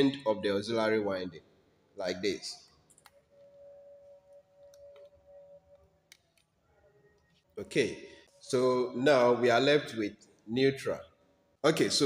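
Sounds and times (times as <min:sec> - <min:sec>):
faint steady tone: 0:01.8 - 0:11.6.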